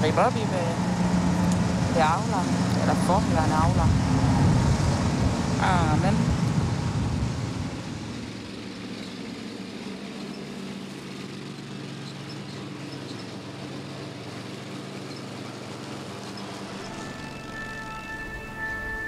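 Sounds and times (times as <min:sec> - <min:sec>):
ride-on mower engine humming: 0:00.0 - 0:19.0.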